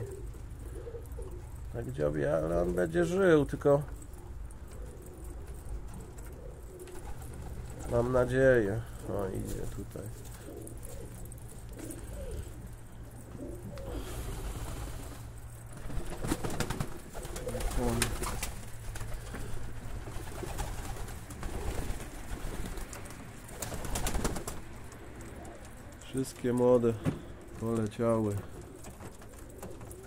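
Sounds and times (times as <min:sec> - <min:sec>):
pigeons cooing: 0:00.0 - 0:30.0.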